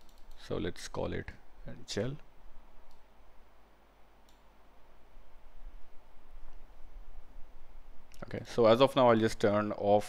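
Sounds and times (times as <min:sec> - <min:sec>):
computer mouse click: 0:00.0 - 0:00.4, 0:04.2 - 0:04.5.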